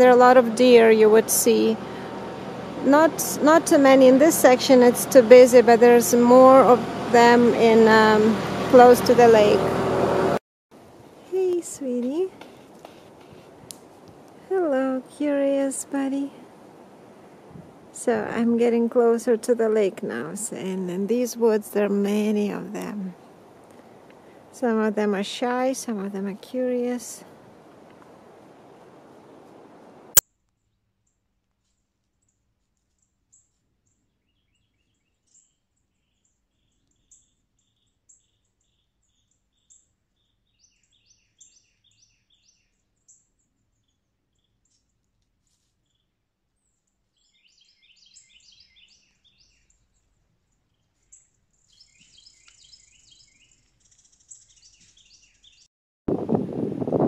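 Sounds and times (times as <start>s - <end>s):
small birds chirping: 30.6s - 55.7s.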